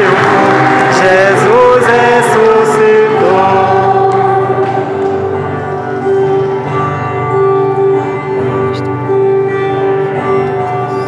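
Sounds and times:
group singing a hymn: 0.0s - 5.8s.

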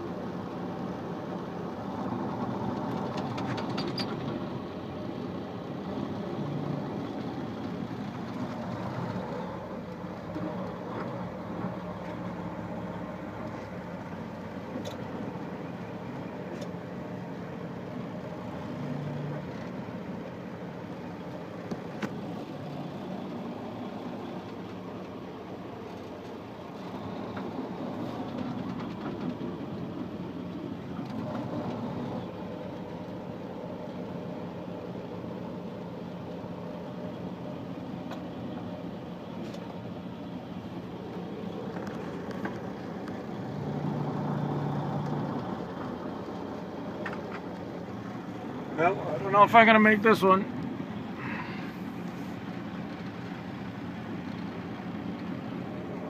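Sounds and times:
car engine and road noise: 0.0s - 56.0s.

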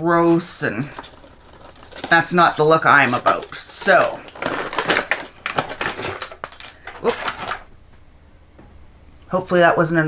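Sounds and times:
packaging rustling and clicking: 0.3s - 7.7s.

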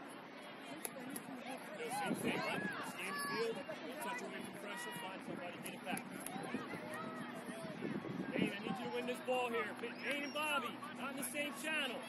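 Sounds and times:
outdoor background noise: 0.0s - 12.0s
distant people calling out: 0.7s - 12.0s.

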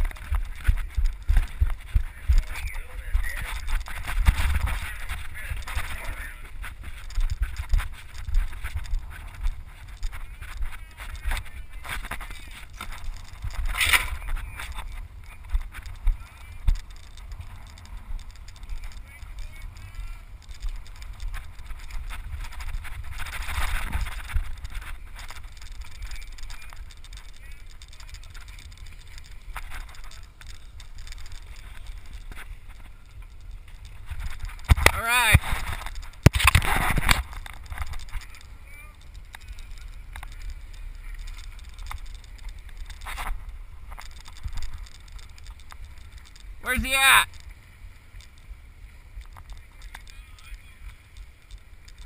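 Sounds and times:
wind buffeting microphone: 0.0s - 46.6s
person shouting: 46.6s - 47.2s.

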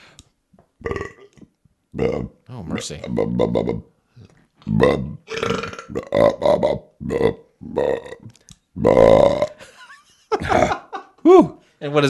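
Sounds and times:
person burping loudly: 0.8s - 2.4s, 3.0s - 3.8s, 4.7s - 9.7s, 10.4s - 10.9s.

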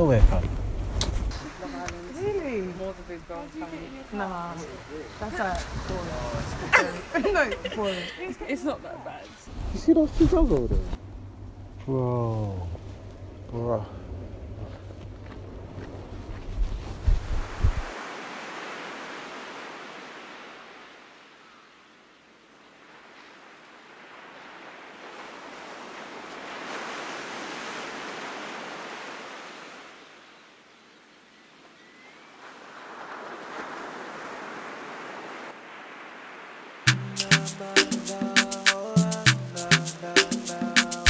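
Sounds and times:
low rumble: 0.0s - 1.7s, 9.5s - 17.9s
sea waves surging: 0.0s - 30.7s, 32.4s - 41.0s.

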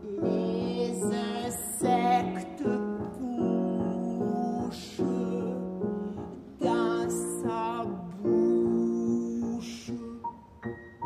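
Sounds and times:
mezzo-soprano singing: 0.0s - 11.0s
piano accompaniment: 0.0s - 11.0s.

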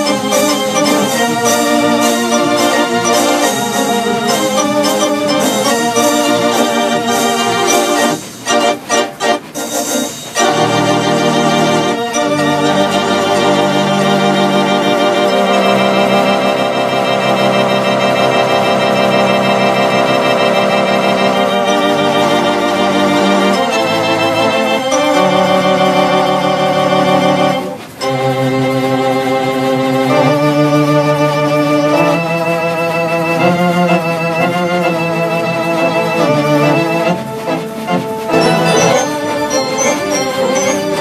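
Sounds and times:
electronic organ chords: 0.0s - 41.0s.

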